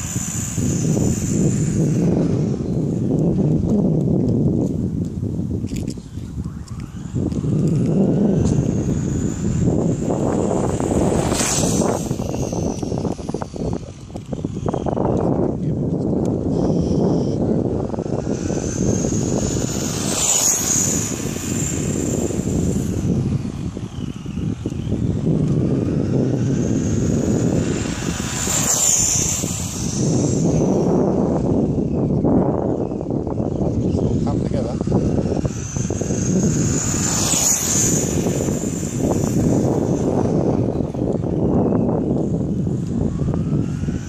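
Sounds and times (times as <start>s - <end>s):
rc truck motor whining: 0.0s - 4.6s, 5.7s - 44.0s
low rumble: 0.0s - 44.0s.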